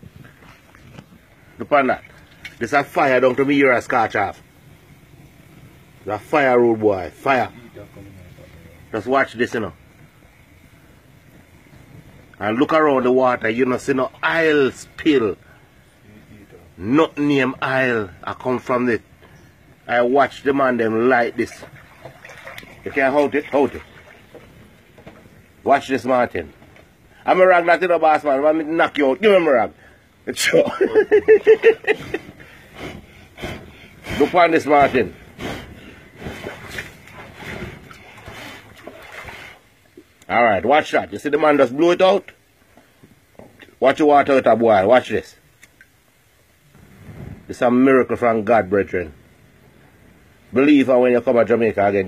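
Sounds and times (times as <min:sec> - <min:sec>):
faint steady rushing noise: 0:00.0 - 0:52.0
people talking and laughing: 0:30.3 - 0:32.6.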